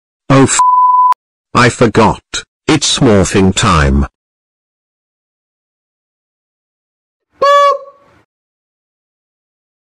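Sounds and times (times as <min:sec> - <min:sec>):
short high-pitched honk: 0:07.4 - 0:08.2.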